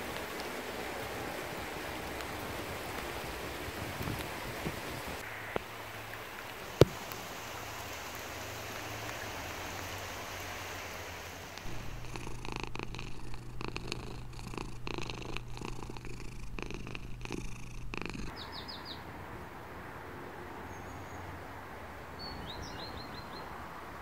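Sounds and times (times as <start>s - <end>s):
cat purring: 11.6s - 18.3s.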